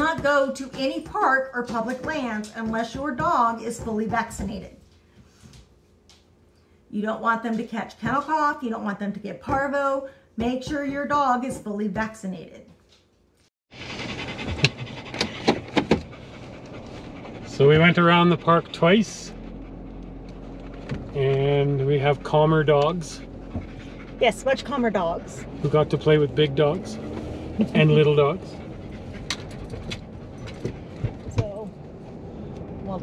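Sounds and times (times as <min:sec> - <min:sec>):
dog panting fast: 0:13.7 - 0:20.5, 0:21.9 - 0:31.2
car cabin road noise: 0:13.7 - 0:33.0.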